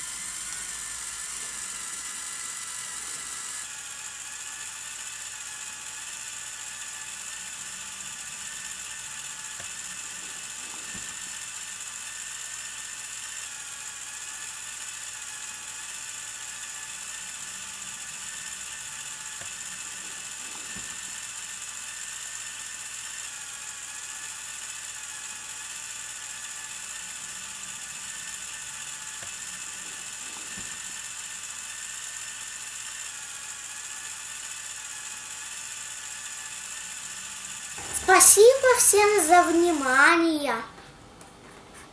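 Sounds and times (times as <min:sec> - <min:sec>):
toy crane motor and gears running: 0:00.0 - 0:40.8.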